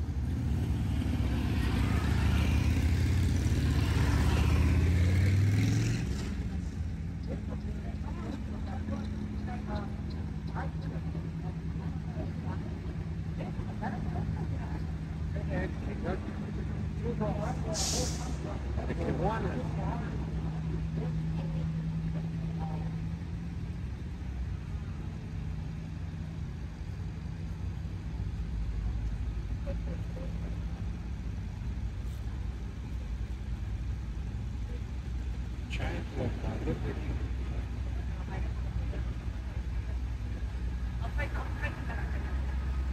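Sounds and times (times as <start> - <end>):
onlookers' voices: 0.0 - 26.4, 28.8 - 42.9
slow vehicle engines droning: 0.0 - 42.9
short sharp hiss: 17.8 - 18.4.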